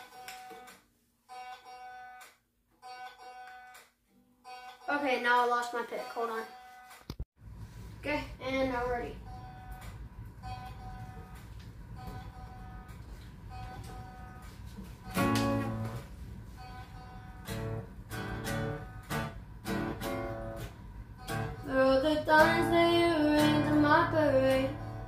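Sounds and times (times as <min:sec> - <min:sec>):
acoustic guitar strumming chords: 0:15.1 - 0:16.1, 0:16.8 - 0:25.0.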